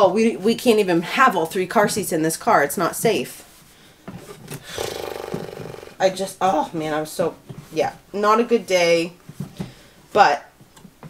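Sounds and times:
short breath: 0:03.7 - 0:06.0.

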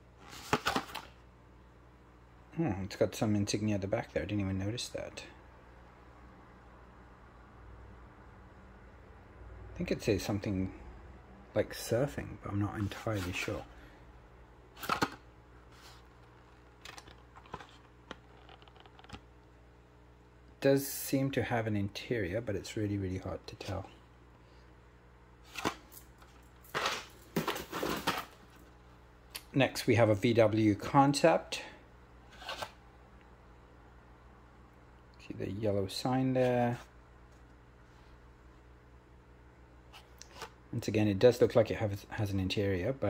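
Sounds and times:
plastic blister pack crinkling: 0:15.8 - 0:19.3.

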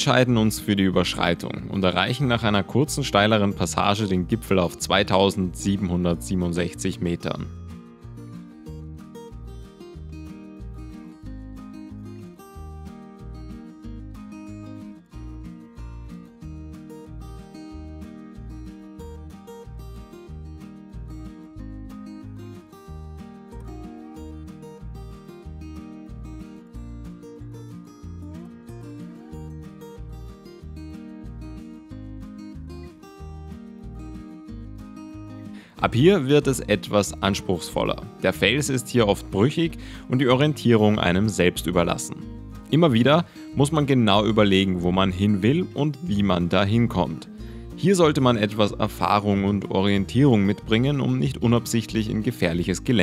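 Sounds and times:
background music with bass line: 0:00.0 - 0:53.0.

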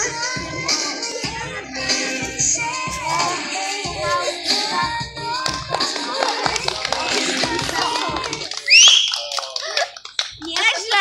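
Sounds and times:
people chattering: 0:00.0 - 0:11.0
audience clapping: 0:05.4 - 0:11.0
high-pitched cheer: 0:05.8 - 0:09.9.

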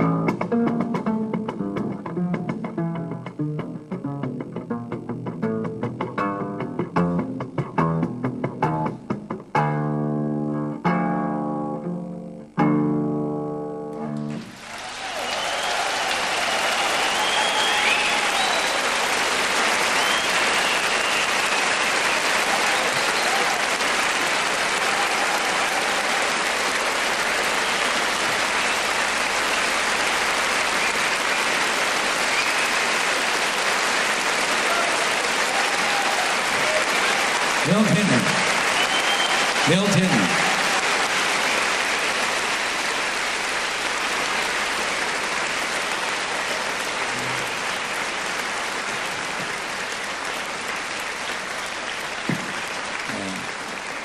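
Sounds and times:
audience applauding: 0:14.2 - 0:54.0.

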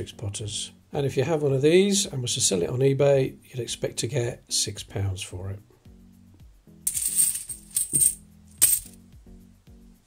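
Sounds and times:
coins jingling in a cloth bag: 0:06.9 - 0:09.0.

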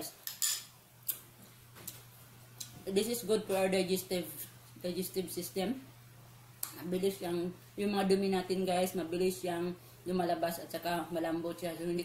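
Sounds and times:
metal spoon clinking on plate: 0:00.3 - 0:00.7.

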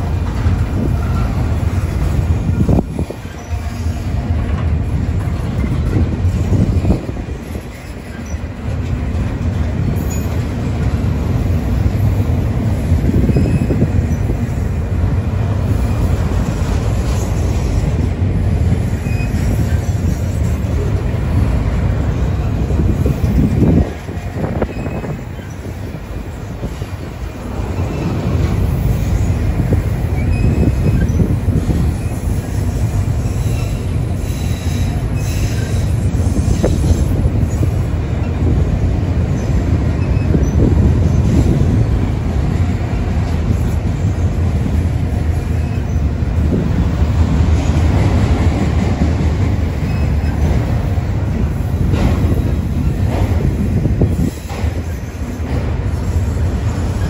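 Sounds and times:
freight train rolling past: 0:00.0 - 0:57.0
steel wheels rumbling on rails: 0:00.0 - 0:57.0.

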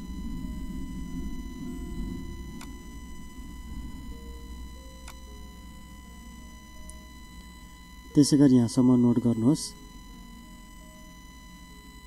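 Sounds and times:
faint high whine: 0:00.0 - 0:12.0.

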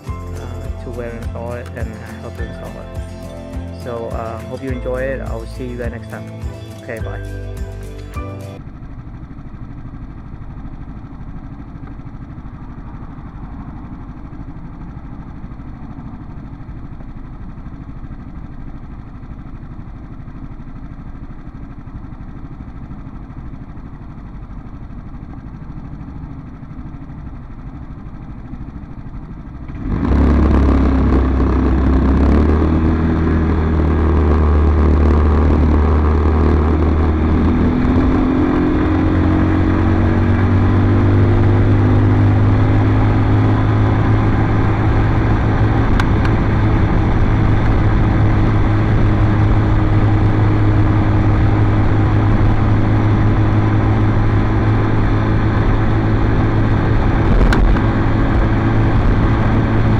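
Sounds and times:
scooter engine running: 0:00.0 - 0:59.9.

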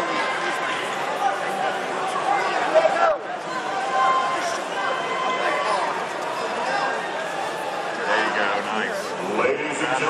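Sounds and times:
crowd chatter indoors: 0:00.0 - 0:10.0.

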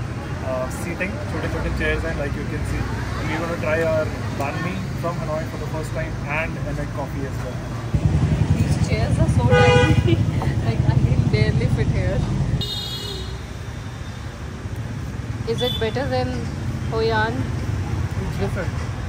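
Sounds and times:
background chatter: 0:00.0 - 0:12.6
engine rumbling close by: 0:00.0 - 0:12.6
street traffic: 0:00.0 - 0:19.0
vehicle horn honk: 0:09.4 - 0:10.1, 0:12.6 - 0:13.4.

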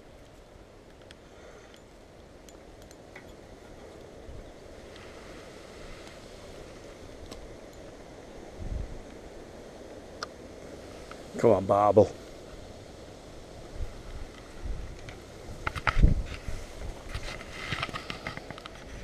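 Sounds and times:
long grass rustling: 0:00.0 - 0:19.0
wind on microphone: 0:08.2 - 0:09.5, 0:12.6 - 0:19.0.

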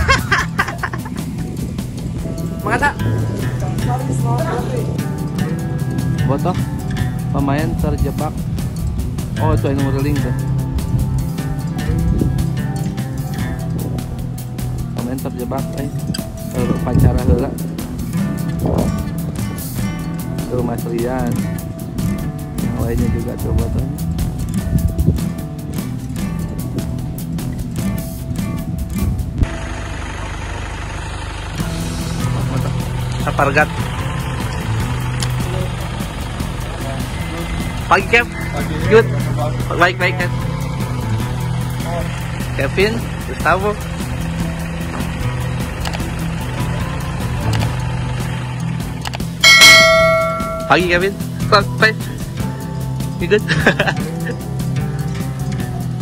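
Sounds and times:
background music with steady beat: 0:00.0 - 0:29.5, 0:31.5 - 0:56.0
motorcycles and cars passing: 0:00.0 - 0:56.0
bell-like notification chime: 0:49.4 - 0:51.0.

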